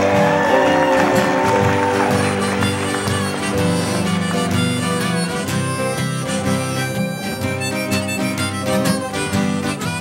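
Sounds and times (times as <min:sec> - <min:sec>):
slide steel guitar: 0:00.0 - 0:10.0
strummed acoustic guitar: 0:00.0 - 0:10.0.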